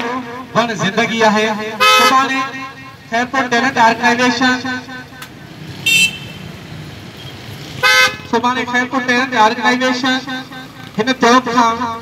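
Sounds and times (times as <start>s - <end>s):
road traffic rumble: 0.0s - 12.0s
vehicle horn toot: 1.8s - 2.2s, 5.8s - 6.5s, 7.8s - 8.2s.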